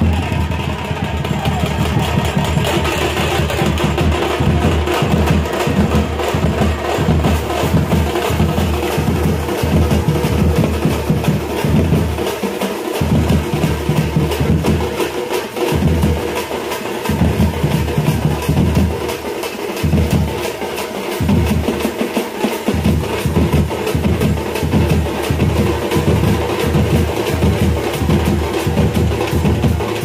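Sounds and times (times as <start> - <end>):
fast sharp drumming: 0.0 - 30.0.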